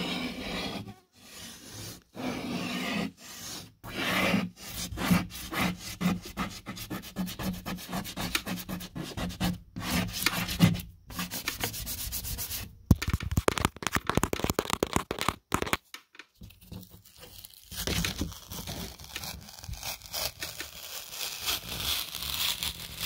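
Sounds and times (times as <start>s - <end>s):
fingers scratching drywall paper: 0.0s - 15.8s, 16.7s - 23.0s.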